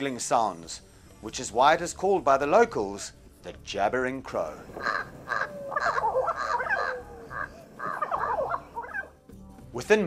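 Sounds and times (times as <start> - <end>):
crows calling: 4.6 - 9.2.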